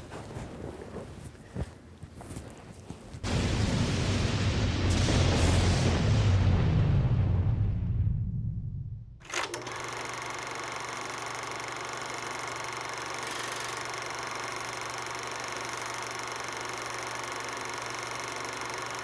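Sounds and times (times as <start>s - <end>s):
steady mechanical whirr: 9.2s - 19.0s.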